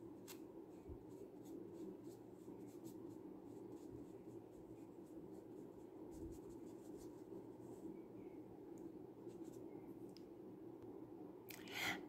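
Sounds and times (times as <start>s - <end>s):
brush scratching on paper: 0.0s - 7.9s, 9.2s - 9.7s
low room hum: 0.0s - 12.0s.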